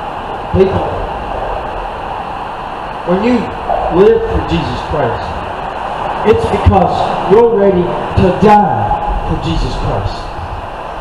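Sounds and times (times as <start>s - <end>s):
highway traffic rumble and hiss: 0.0s - 11.0s.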